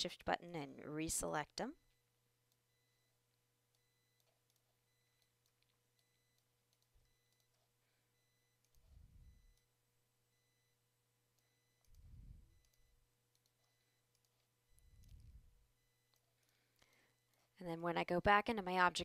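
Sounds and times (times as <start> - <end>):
steady low hum: 7.9 - 14.0.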